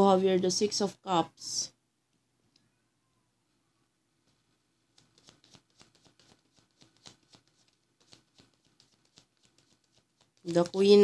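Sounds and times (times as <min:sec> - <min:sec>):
cards riffling and clicking: 0:04.3 - 0:10.5.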